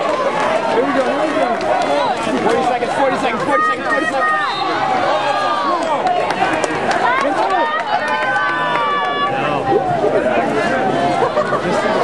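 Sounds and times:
crowd yelling and cheering: 0:00.0 - 0:12.0.

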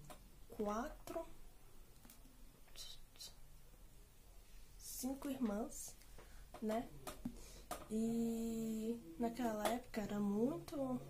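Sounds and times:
woman whispering: 0:02.6 - 0:03.5.

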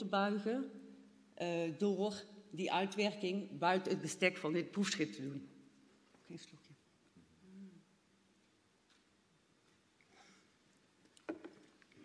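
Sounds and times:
faint hummed voice: 0:07.2 - 0:08.0.

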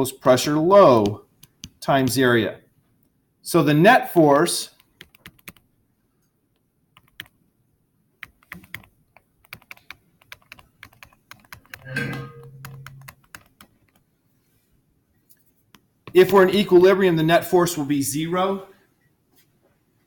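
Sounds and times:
stylus tapping on tablet screen: 0:01.0 - 0:01.8, 0:08.2 - 0:14.0.

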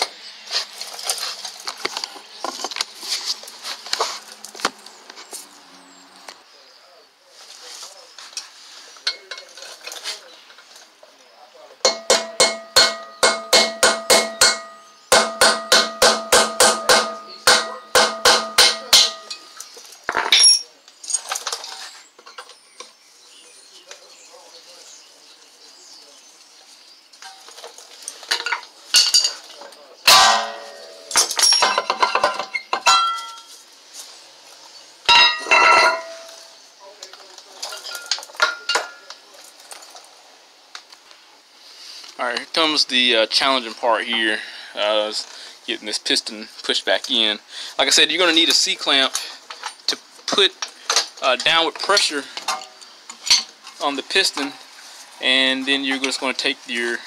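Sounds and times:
metal clanks and knocks: 0:11.8 - 0:22.6, 0:27.2 - 0:33.5, 0:35.1 - 0:36.4, 0:37.6 - 0:39.0.

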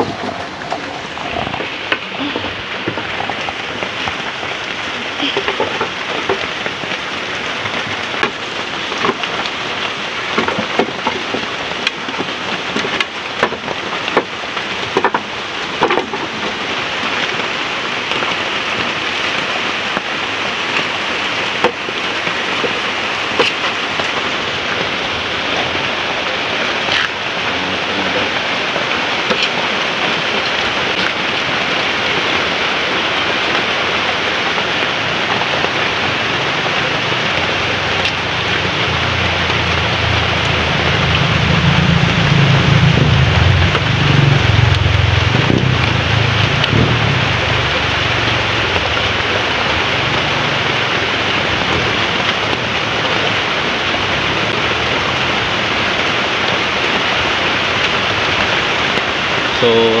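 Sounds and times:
rain on hard surfaces: 0:00.0 - 1:00.0
low rumble: 0:35.0 - 0:52.9.

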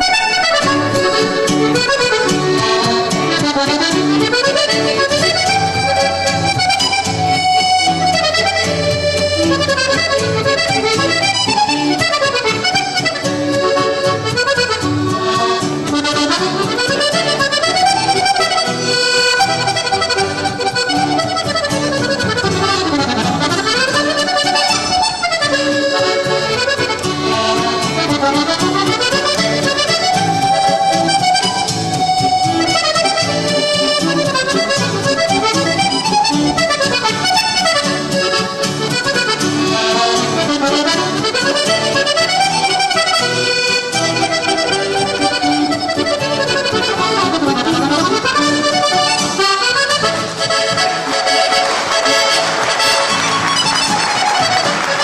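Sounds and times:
accordion playing mazurka: 0:00.0 - 0:55.0
guitar accompaniment: 0:00.0 - 0:55.0.

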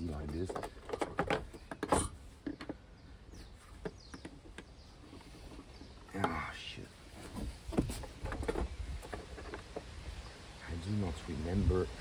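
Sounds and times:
plastic ticks and squeaks: 0:00.0 - 0:02.9.

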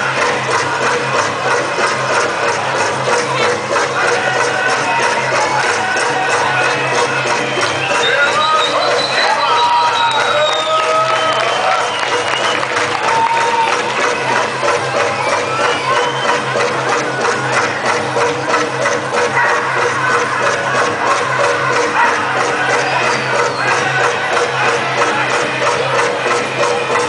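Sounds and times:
large drum fast steady beat: 0:00.0 - 0:27.0.

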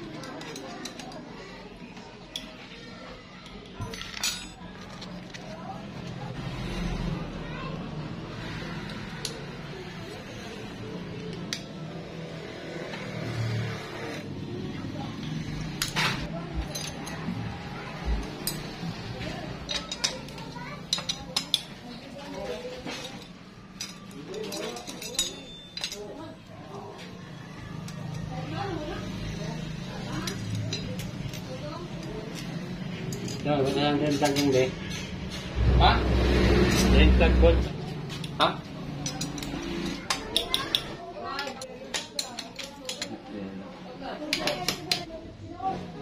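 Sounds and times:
metal tools clinking: 0:03.4 - 0:05.6, 0:15.2 - 0:17.3, 0:18.1 - 0:26.4, 0:30.2 - 0:35.6, 0:38.1 - 0:43.2.

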